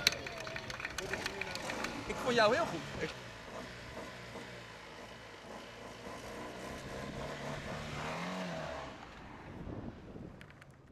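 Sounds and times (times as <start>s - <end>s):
small car engine accelerating: 0.1s - 9.9s.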